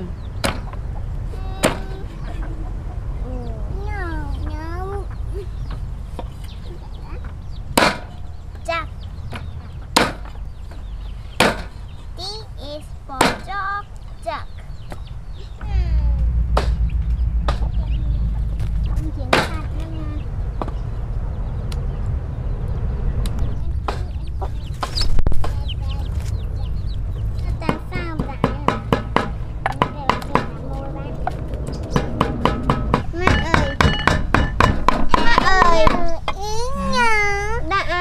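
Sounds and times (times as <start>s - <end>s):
steady low hum: 0.0s - 35.1s
hens and chicks clucking: 0.0s - 38.0s.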